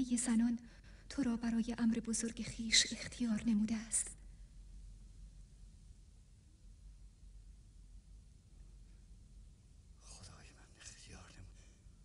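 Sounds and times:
low steady hum: 0.0 - 12.0
faint whispered speech: 10.0 - 11.7.

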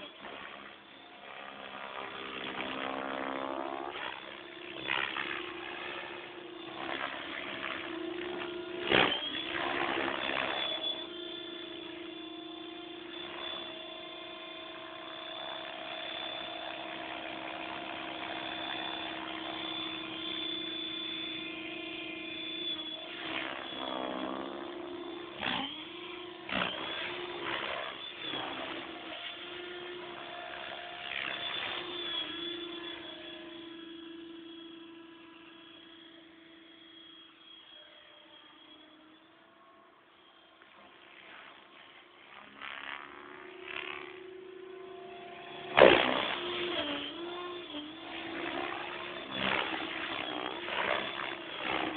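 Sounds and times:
rc helicopter motor whine: 0.0 - 51.9.

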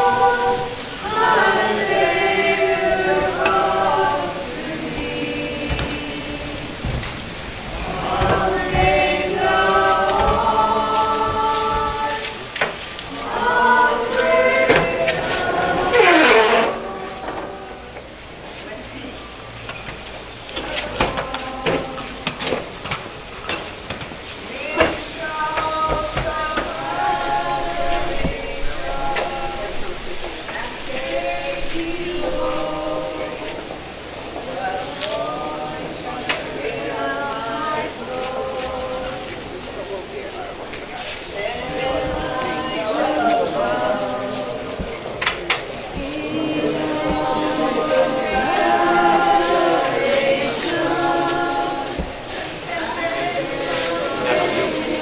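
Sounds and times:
group of people singing: 0.0 - 55.0.

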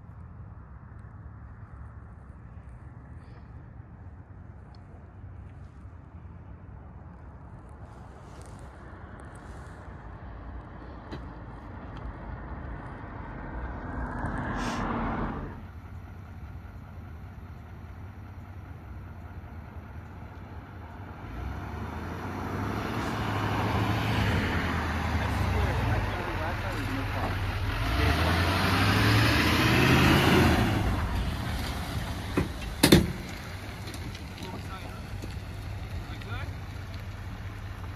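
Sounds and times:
diesel pickup truck approaching: 0.0 - 37.9.

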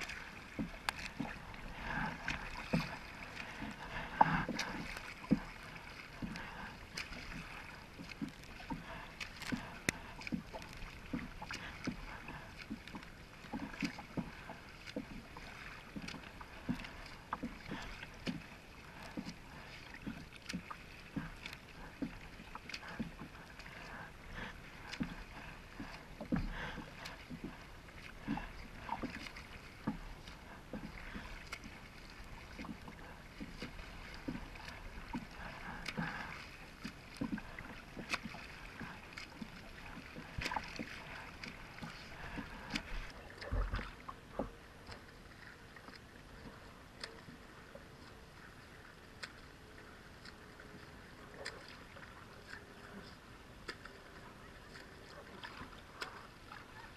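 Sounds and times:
water splashing around kayak: 0.0 - 56.9.

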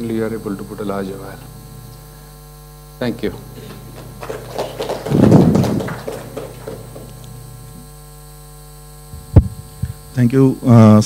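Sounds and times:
mains hum: 0.0 - 11.0
loud burst of noise: 3.6 - 7.8.

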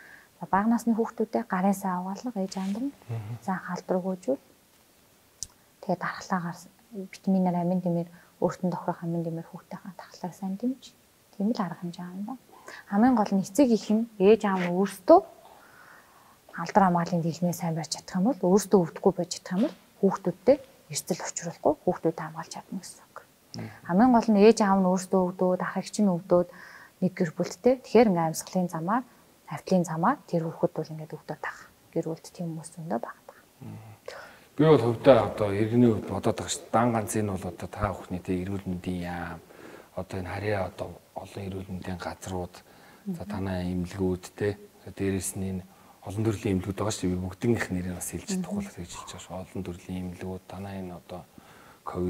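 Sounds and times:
woman speaking: 0.4 - 4.4, 5.8 - 15.4, 16.5 - 33.3, 43.1 - 43.4, 48.3 - 48.7
man's voice: 3.1 - 3.4, 23.6 - 23.8, 34.6 - 39.3, 43.2 - 45.4, 46.1 - 50.8
woman talking softly: 13.8 - 15.0, 43.1 - 43.4, 48.3 - 48.7.

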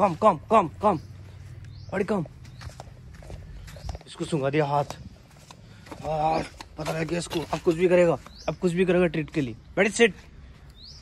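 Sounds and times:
footsteps on dry ground: 0.0 - 11.0.

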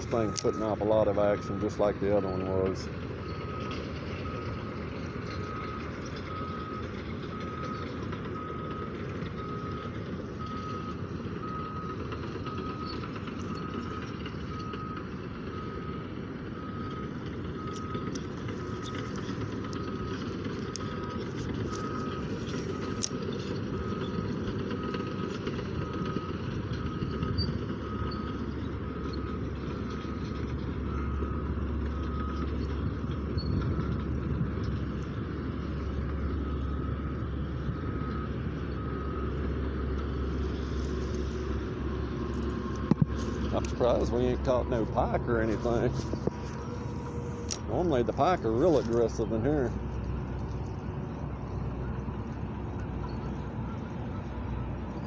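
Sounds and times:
reversing alarm beeping: 0.0 - 55.0
traffic rumble: 0.0 - 55.0.

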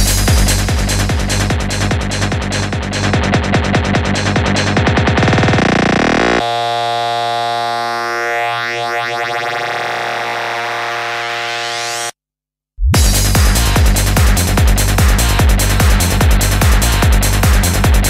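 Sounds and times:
trance kick and bassline: 0.0 - 12.0, 12.9 - 18.0
held synthesizer chord: 5.4 - 12.1.

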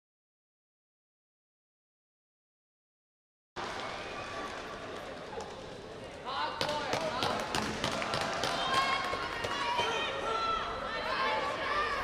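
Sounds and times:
claps: 6.6 - 9.9.

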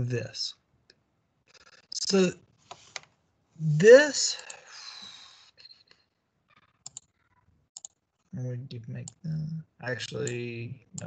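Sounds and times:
computer mouse clicks: 6.8 - 7.1, 7.8 - 8.0.

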